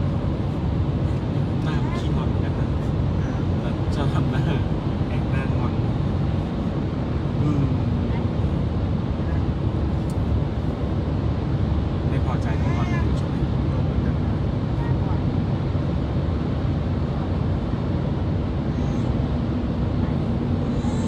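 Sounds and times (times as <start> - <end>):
car road and engine noise: 0.0 - 21.0.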